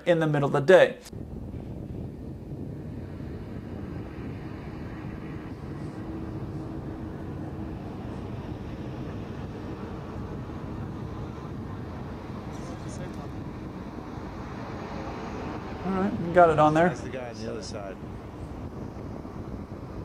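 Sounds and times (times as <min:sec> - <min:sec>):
propeller plane engine: 0:01.1 - 0:20.0.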